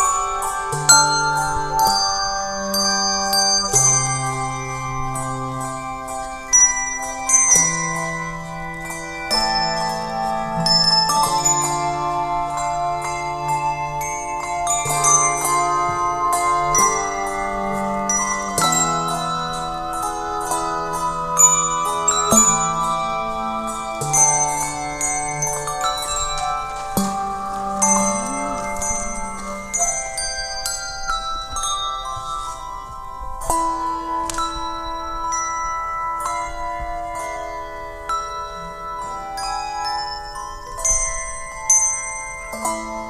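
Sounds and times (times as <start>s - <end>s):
handbells ringing chords: 0.0s - 43.0s
sustained lower bells: 0.0s - 43.0s.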